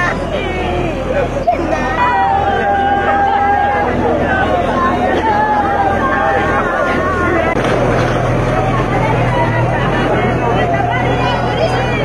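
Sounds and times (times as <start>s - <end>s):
crowd voices: 0.0s - 12.0s
steady low hum: 0.0s - 12.0s.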